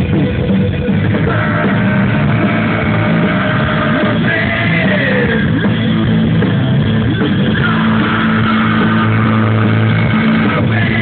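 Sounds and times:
live rock music with distorted guitars: 0.0s - 11.0s.

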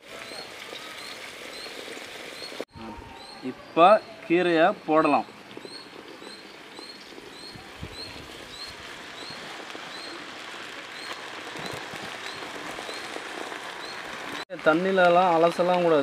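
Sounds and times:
leaves sizzling in a pot: 0.0s - 16.0s
bird chirping: 2.4s - 10.2s.

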